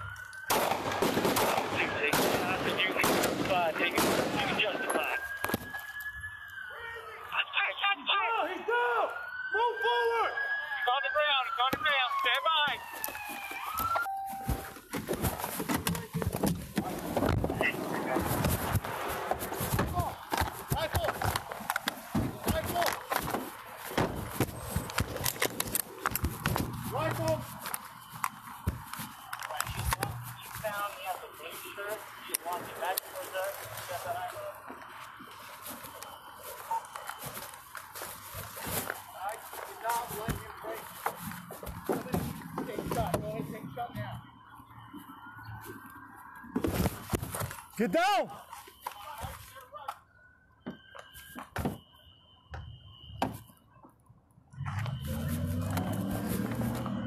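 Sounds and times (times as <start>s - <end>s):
police siren wailing and yelping: 0.0s - 57.0s
body camera jostling against gear: 11.5s - 44.0s, 46.6s - 49.7s, 54.9s - 57.0s
muffled voices: 28.7s - 34.7s.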